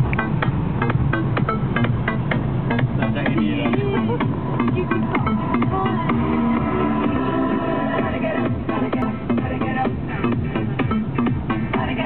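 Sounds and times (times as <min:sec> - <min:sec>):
electronic dance music on car stereo: 0:00.0 - 0:12.0.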